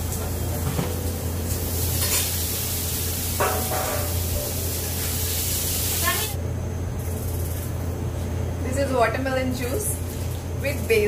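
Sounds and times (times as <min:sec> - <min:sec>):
extractor fan hum: 0:00.0 - 0:11.0
meat sizzling in frying pan: 0:01.4 - 0:06.4.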